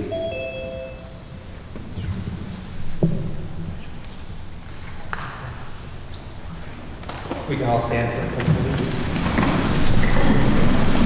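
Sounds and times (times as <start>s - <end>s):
two-note electronic chime: 0.0s - 1.5s.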